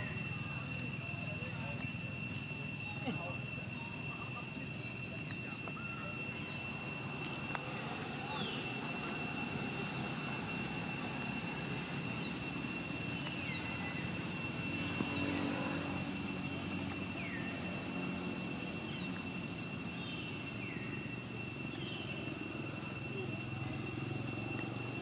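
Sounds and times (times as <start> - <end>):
low engine-like rumble: 0.0 - 25.0
steady high-pitched tone: 0.0 - 25.0.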